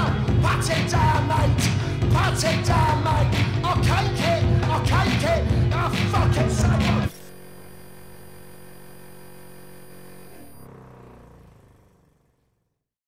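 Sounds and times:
electronic drone: 0:07.1 - 0:11.4.

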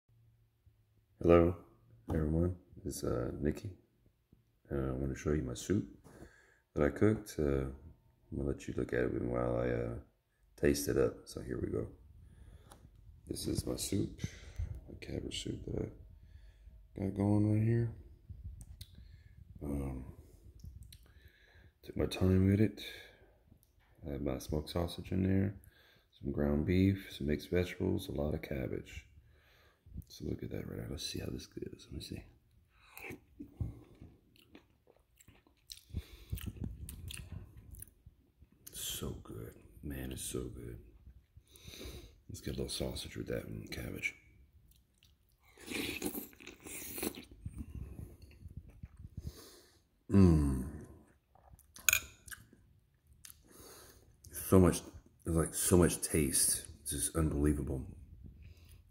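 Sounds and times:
chewing: 0:32.8 - 0:38.0, 0:44.7 - 0:49.4
mouth sounds eating: 0:32.8 - 0:38.0, 0:44.7 - 0:52.5.

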